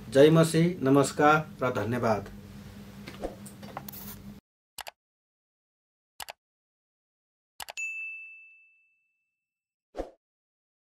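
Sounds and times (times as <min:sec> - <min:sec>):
notification bell ding: 0:07.7 - 0:09.3.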